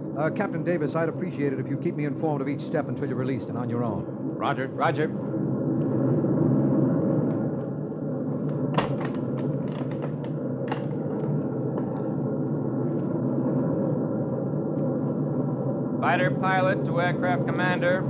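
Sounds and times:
bomber engines droning: 0:00.0 - 0:18.0.

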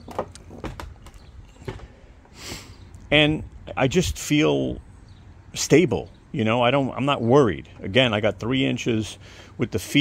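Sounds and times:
short hissing rush: 0:02.3 - 0:02.9.

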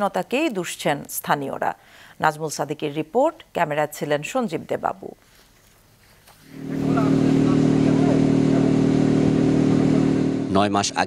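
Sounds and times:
engine droning steadily: 0:06.5 - 0:10.6
faint voices: 0:06.6 - 0:08.9.

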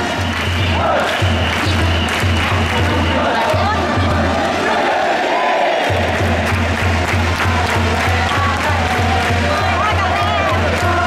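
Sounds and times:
crowd noise: 0:00.0 - 0:11.0
stadium music with bass beat: 0:00.0 - 0:11.0.

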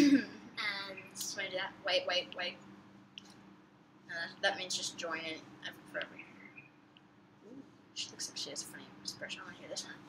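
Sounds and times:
low steady hum: 0:00.0 - 0:10.0
faint high chirps: 0:06.0 - 0:07.8.

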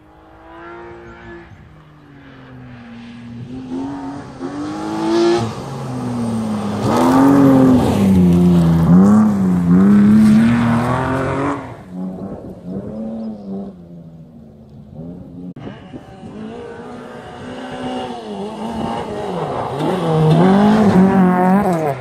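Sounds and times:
rally car engine revving: 0:00.0 - 0:01.7, 0:03.4 - 0:22.0
gravel crunching under tyres: 0:04.2 - 0:22.0.

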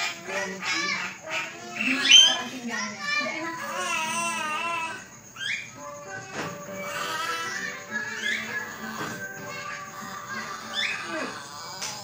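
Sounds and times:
bird squawks and warbling whistles: 0:05.4 - 0:05.8.

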